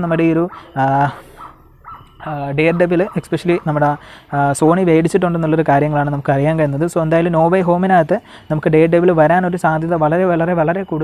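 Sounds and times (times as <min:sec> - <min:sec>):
man speaking: 0:00.0 - 0:01.4, 0:02.2 - 0:11.0.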